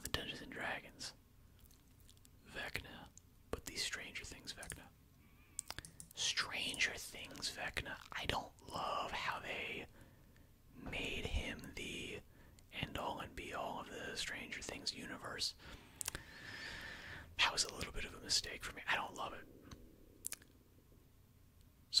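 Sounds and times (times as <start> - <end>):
man whispering: 0.0 - 1.2, 2.4 - 5.0, 5.7 - 10.0, 10.8 - 16.2, 17.3 - 19.5.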